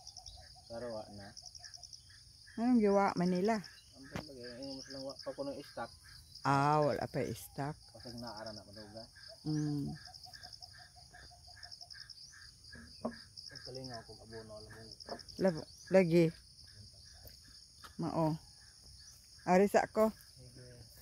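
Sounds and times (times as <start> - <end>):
insects chirping: 0.0 - 21.0
lower insect chirp: 0.0 - 21.0
people talking: 2.6 - 5.9, 6.5 - 10.0, 18.0 - 18.4, 19.5 - 20.8.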